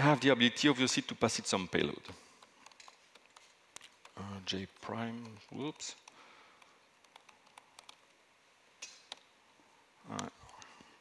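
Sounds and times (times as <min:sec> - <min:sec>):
soft keyboard typing: 0:02.6 - 0:04.3, 0:05.0 - 0:08.2.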